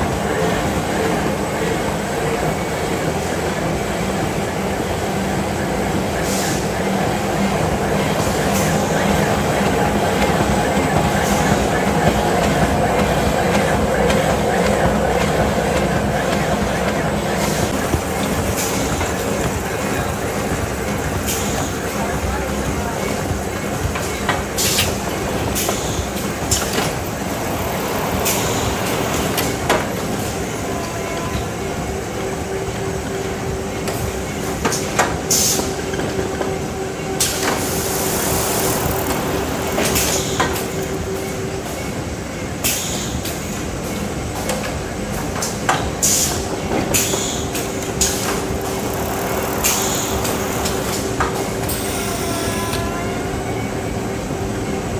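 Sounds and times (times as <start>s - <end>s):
sharp machine clicks and knocks: 47.0s - 51.3s.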